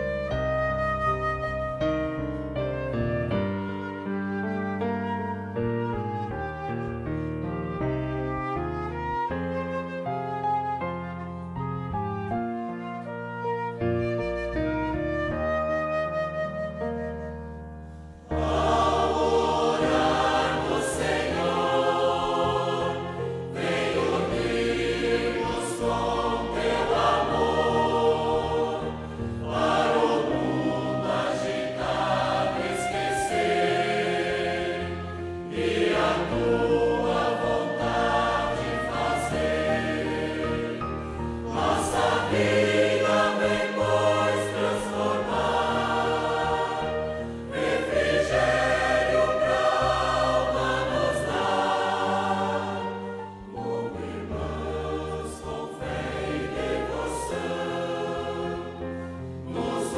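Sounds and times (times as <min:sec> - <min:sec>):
instrumental accompaniment: 0:00.0 - 0:59.9
choir singing sacred piece: 0:18.2 - 0:59.9.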